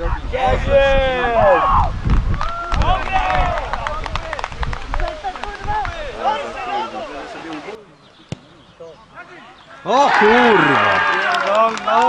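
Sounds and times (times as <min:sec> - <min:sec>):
players shouting: 0:09.1 - 0:12.0.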